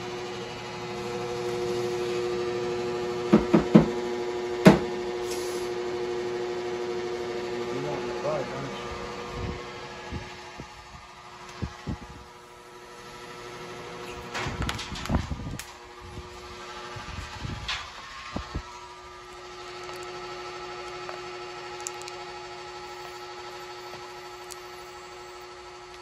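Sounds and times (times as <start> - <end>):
electric fan humming: 0.0 - 26.0
knocks on wooden bench: 3.3 - 4.0, 4.6 - 4.9.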